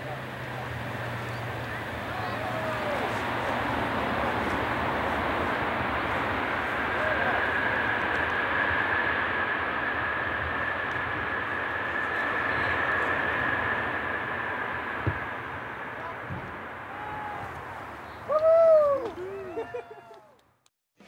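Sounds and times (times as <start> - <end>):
jet engines whining: 0.0 - 20.0.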